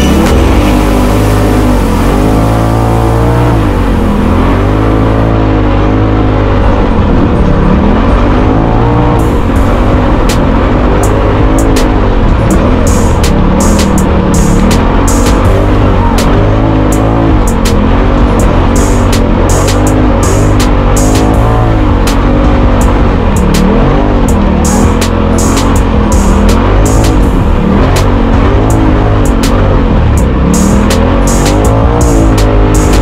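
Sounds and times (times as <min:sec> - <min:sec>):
background music: 0:00.0 - 0:33.0
off-road vehicle engine revving: 0:00.0 - 0:33.0.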